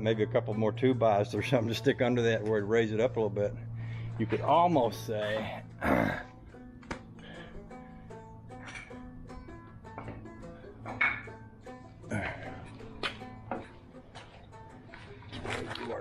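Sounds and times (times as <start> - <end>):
background music: 0.0 - 16.0
parts knocking and clunking: 8.5 - 11.5, 12.7 - 14.7.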